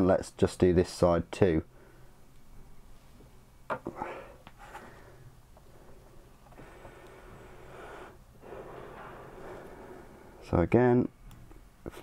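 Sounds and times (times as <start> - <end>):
person breathing faintly: 3.9 - 10.5.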